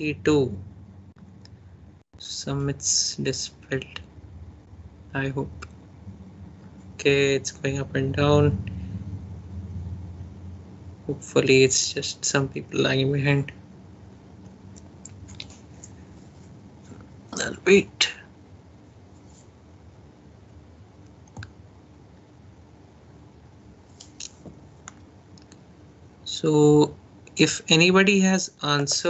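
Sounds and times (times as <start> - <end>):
low hum with faint hiss: 0.0 - 29.0.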